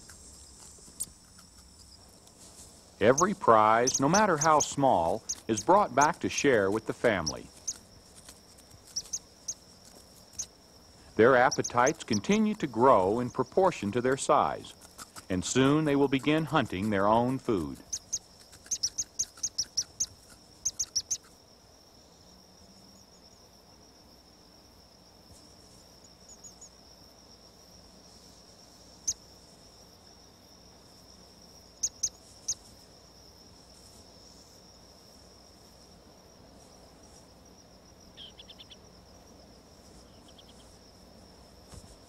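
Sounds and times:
high-pitched insect trill: 0.0s - 42.0s
sharp insect chirps: 0.0s - 42.0s.

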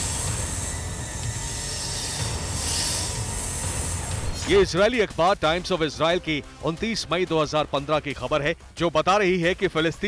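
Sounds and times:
high hiss: 0.0s - 4.6s.

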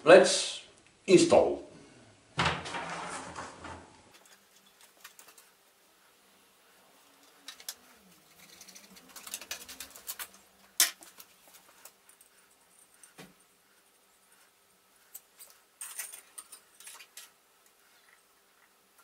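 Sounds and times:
cloth rustling against metal: 2.7s - 19.0s.

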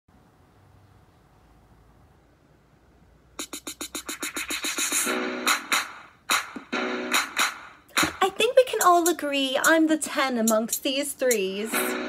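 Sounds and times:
pop backing track: 3.4s - 12.0s
woman singing: 8.3s - 12.0s.

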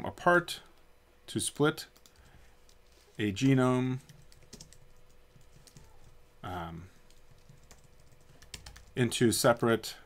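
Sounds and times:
keyboard typing: 2.0s - 2.9s, 4.0s - 6.2s, 7.0s - 9.0s.

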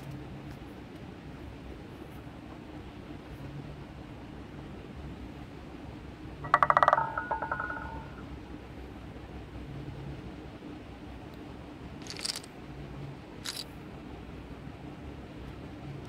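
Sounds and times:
low hum: 0.0s - 16.0s
roulette ball rattling on wheel: 6.4s - 8.2s.

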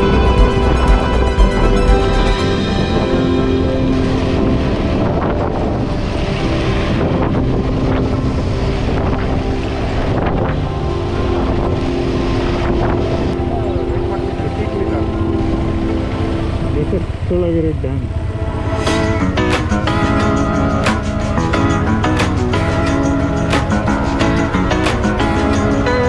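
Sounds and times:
motorcycle engine cruising: 0.0s - 26.0s
wind noise on microphone: 0.0s - 26.0s.

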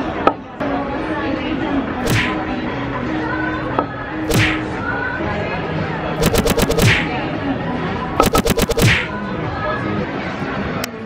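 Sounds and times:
whip-like whoosh: 2.0s - 2.4s.

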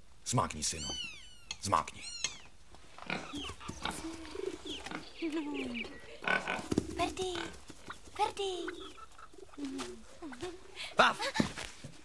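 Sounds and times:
pig grunting: 3.0s - 7.7s.

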